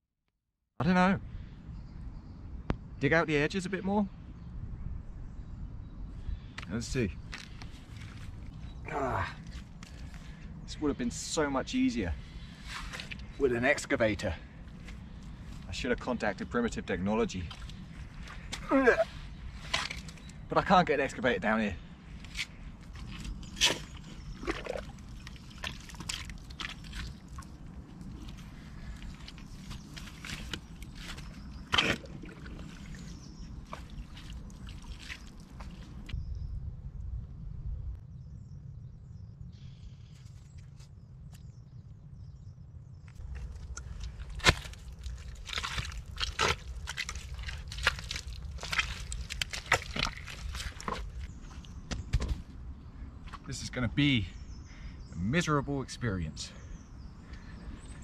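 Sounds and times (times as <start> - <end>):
spade digging in mud and water: 17.4 - 20.3, 22.2 - 36.0, 43.2 - 51.3.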